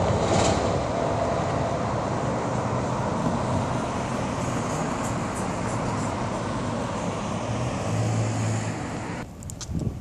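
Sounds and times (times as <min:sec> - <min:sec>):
low engine hum: 0:00.0 - 0:09.3
road traffic noise: 0:00.0 - 0:10.0.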